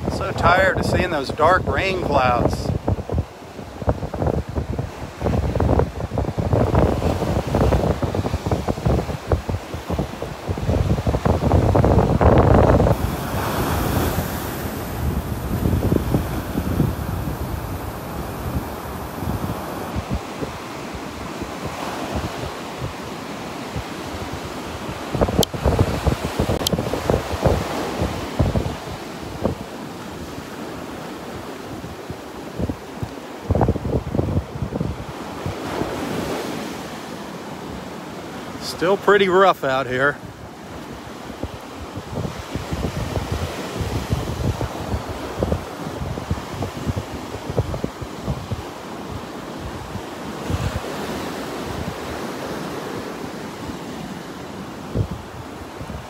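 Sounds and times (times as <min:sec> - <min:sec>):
wind buffeting microphone: 0:00.0 - 0:37.0, 0:40.2 - 0:56.0
surf breaking on beach: 0:00.0 - 0:56.0.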